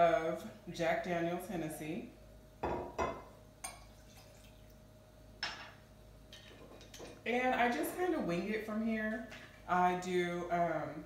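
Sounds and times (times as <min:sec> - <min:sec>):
liquid pouring into glass: 0:03.6 - 0:04.8.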